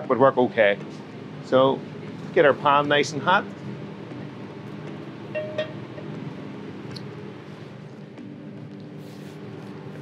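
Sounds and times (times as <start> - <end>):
kitchen extractor hum: 0.0 - 10.0.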